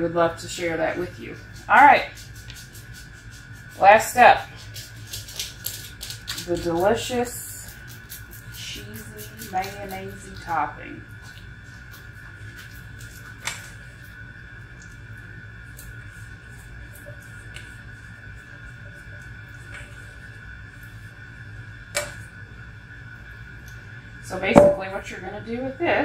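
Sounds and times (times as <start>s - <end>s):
background hum: 0.0s - 26.0s
sharp taps on bowl: 24.6s - 24.9s.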